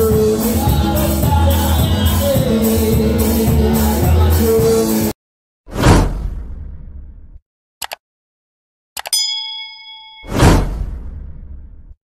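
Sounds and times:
whoosh: 0:05.7 - 0:07.4, 0:10.2 - 0:12.0
clicks: 0:09.0 - 0:09.2
bell-like ding: 0:09.1 - 0:10.7.

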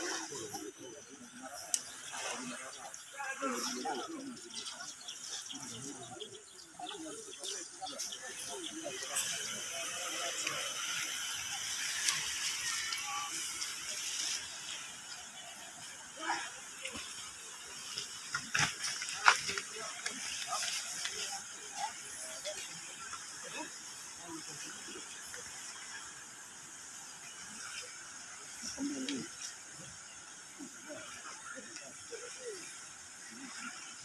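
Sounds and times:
crowd talking outdoors: 0:00.0 - 0:34.0
steady hiss: 0:00.0 - 0:34.0.

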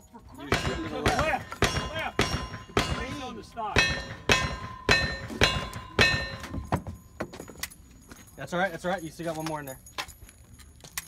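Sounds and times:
steel targets ringing: 0:00.4 - 0:07.2.

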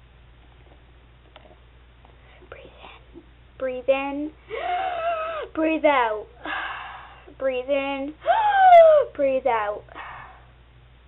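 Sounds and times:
low steady hum: 0:00.0 - 0:11.0
faint whisper: 0:02.3 - 0:03.2.

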